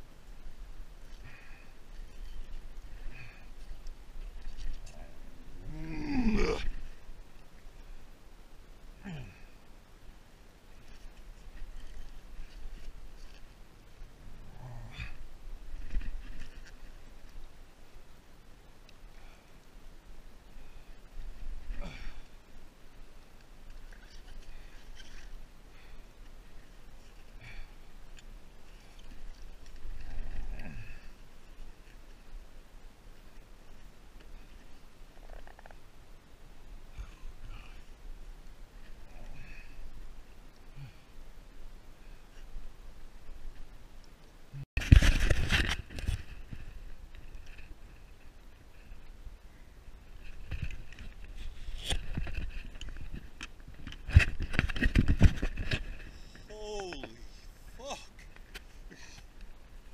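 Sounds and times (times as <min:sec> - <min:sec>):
wind rumbling on microphone: 0:19.2 - 0:59.9
choppy water: 0:20.4 - 0:32.4.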